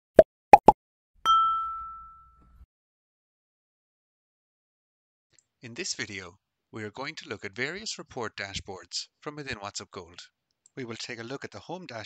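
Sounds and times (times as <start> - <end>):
bright ding: 1.3 - 2.6.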